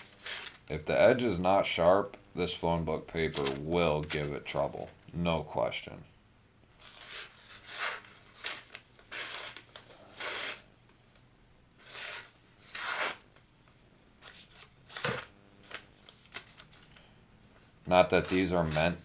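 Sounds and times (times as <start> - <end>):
knife slicing paper: 0.0 - 0.6, 6.8 - 10.7, 11.8 - 13.2, 17.9 - 19.0.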